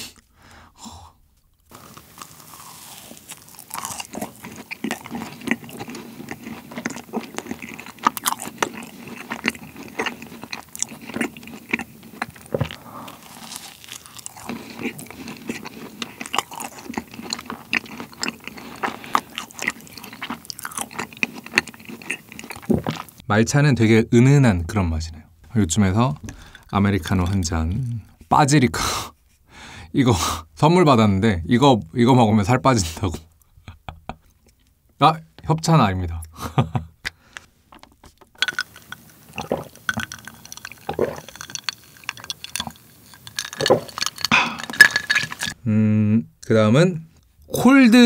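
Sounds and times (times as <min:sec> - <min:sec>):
biting and chewing: 0:01.6 - 0:23.2, 0:37.7 - 0:45.6.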